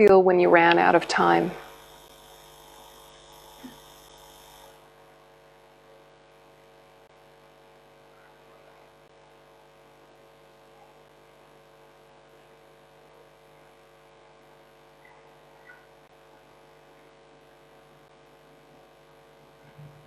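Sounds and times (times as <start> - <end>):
faint electrical mains hum: 0.0 - 20.0.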